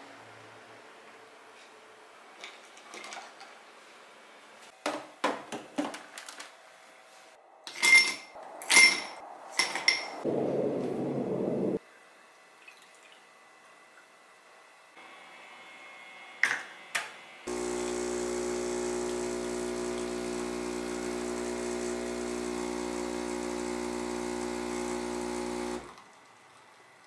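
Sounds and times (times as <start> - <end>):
espresso machine pump humming: 17.5 - 26.0.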